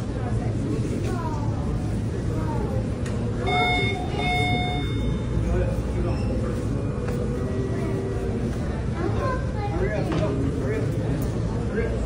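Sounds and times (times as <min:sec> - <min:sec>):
people talking: 0:00.0 - 0:12.0
electronic beeper long beeps: 0:03.5 - 0:05.3.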